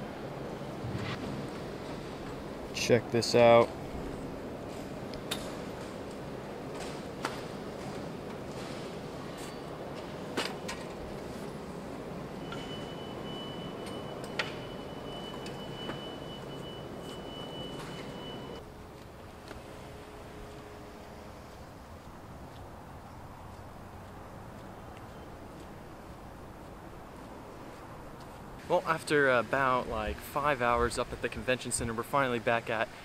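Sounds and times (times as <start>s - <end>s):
steady room noise: 0.0s - 33.0s
thin high whine: 11.4s - 18.6s.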